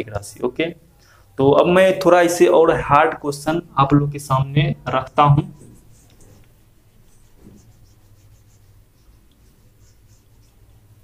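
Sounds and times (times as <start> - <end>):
steady low hum: 0.0 - 11.0
whiteboard wiping: 5.4 - 11.0.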